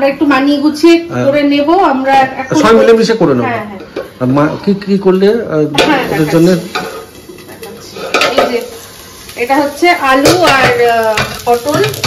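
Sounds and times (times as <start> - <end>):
vegetables sizzling in oil: 2.5 - 12.0
metal tongs clanking on pan lid: 5.8 - 8.7, 10.1 - 12.0.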